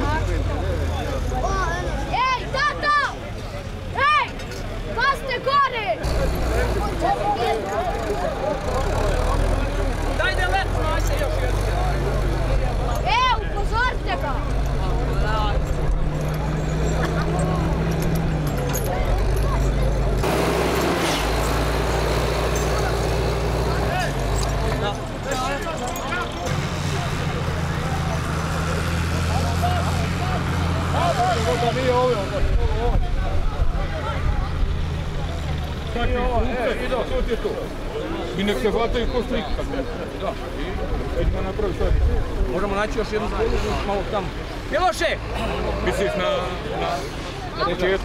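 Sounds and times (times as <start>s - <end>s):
crowd voices: 0.0s - 48.0s
diesel engine under load: 0.0s - 48.0s.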